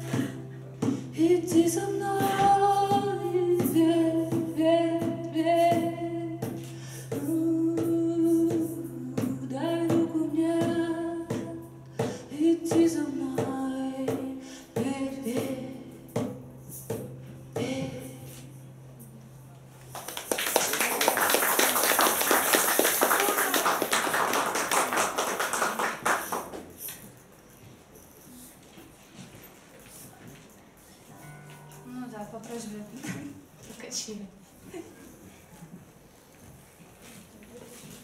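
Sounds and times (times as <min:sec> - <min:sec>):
woman singing: 0:00.0 - 0:16.2, 0:17.5 - 0:18.6.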